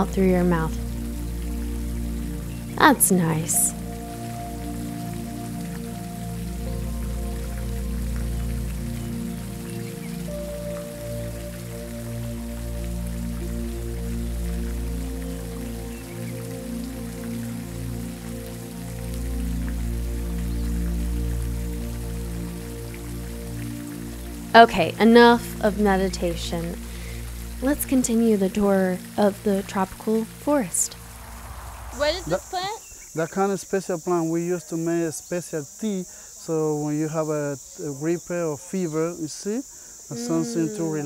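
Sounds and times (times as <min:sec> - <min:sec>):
soft ambient music: 0:00.0 - 0:32.7, 0:40.2 - 0:41.0
fountain water pattering: 0:00.0 - 0:41.0.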